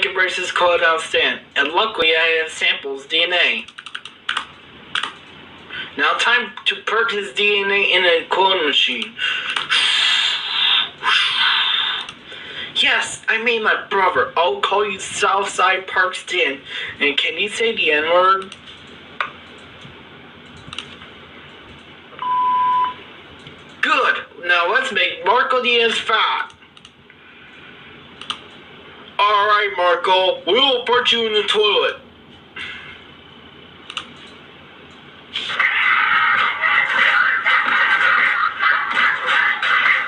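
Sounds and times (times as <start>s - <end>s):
censor bleep: 22.2s - 23.0s.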